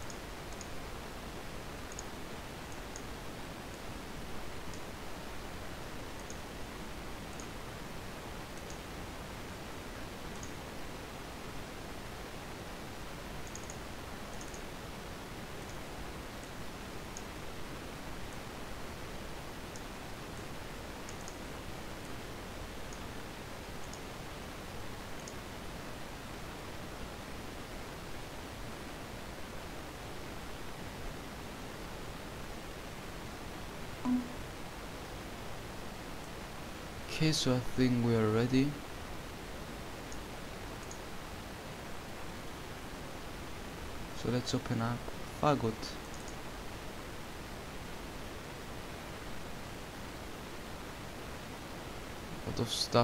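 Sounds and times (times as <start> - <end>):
microphone hiss: 0.0 - 53.0.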